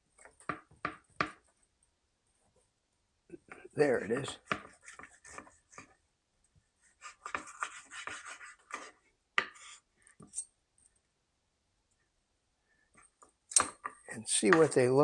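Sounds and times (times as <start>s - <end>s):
knife scraping cutting board: 7.0s - 8.9s.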